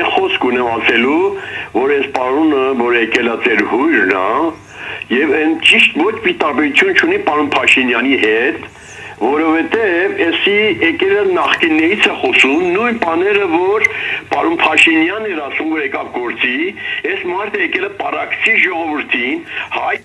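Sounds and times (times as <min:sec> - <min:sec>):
person talking: 0:00.0 - 0:20.0.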